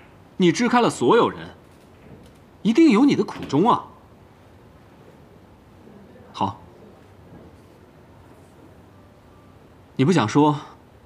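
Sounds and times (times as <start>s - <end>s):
faint room hush: 0.0s - 11.0s.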